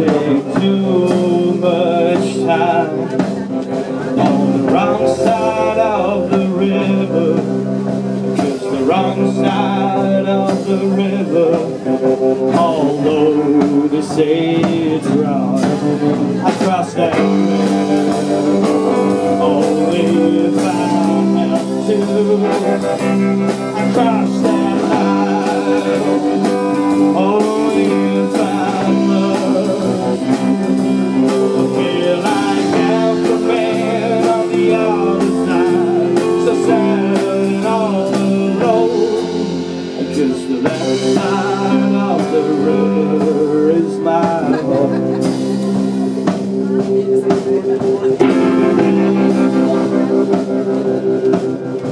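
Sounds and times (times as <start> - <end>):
garage rock band playing: 0.0 - 51.9
man singing: 0.0 - 51.9.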